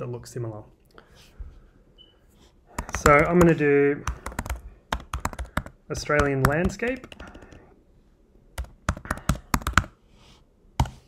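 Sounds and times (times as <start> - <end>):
computer keyboard typing: 2.8 - 7.6, 8.6 - 10.0.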